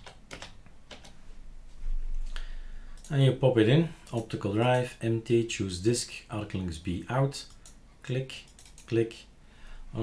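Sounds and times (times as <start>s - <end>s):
computer keyboard keystrokes: 0.0s - 1.2s, 8.4s - 9.0s.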